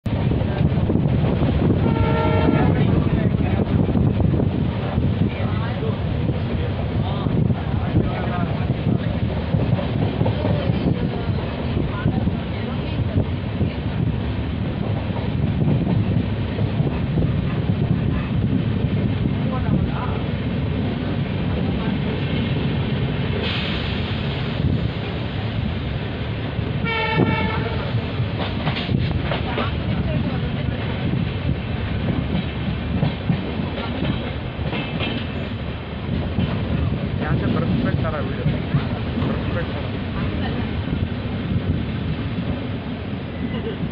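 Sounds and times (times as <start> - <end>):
train wheels rumbling on rails: 0.0 - 43.9
wind rush: 0.0 - 43.9.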